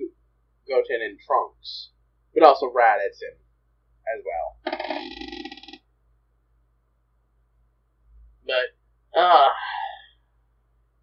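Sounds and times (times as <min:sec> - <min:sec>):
man's voice holding a word: 0:08.5 - 0:10.0.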